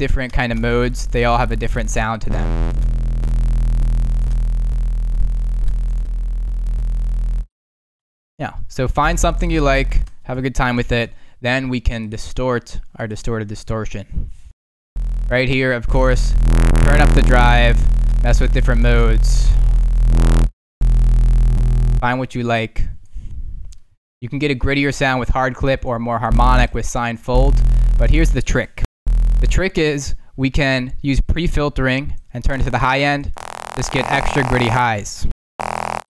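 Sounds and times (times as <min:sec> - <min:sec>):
distorted synth bass note: 0:00.5 - 0:07.5, 0:15.0 - 0:22.0, 0:26.3 - 0:26.7, 0:27.3 - 0:28.4, 0:29.1 - 0:29.7, 0:33.4 - 0:34.9, 0:35.6 - 0:36.0.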